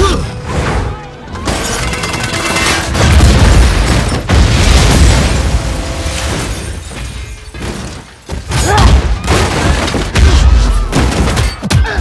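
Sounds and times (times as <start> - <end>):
metal smashing crash: 1.4 - 11.7.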